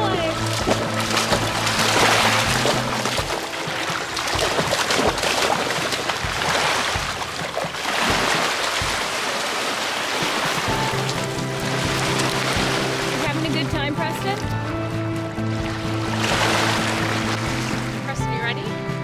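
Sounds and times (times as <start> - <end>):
dog splashing through water: 0.0 - 13.5, 15.9 - 18.1
background music: 0.0 - 19.0
small waves washing on pebbles: 0.1 - 13.5.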